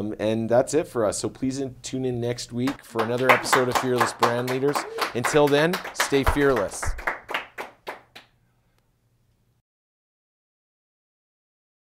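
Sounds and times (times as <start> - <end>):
hand claps: 2.7 - 8.3.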